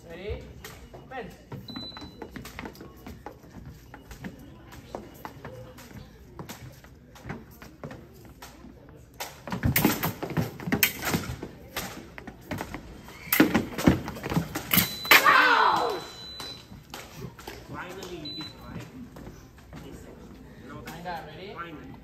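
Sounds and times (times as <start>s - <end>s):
fencing footwork taps and stamps: 0.6s - 12.8s.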